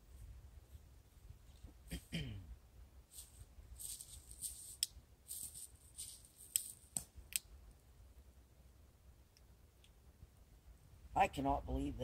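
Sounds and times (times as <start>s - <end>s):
rustling and crackling: 3.1s - 7.4s.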